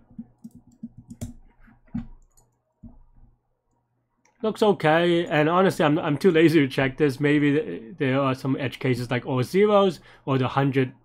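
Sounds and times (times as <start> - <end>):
computer keys clicking: 0.1 - 1.4, 2.2 - 2.6.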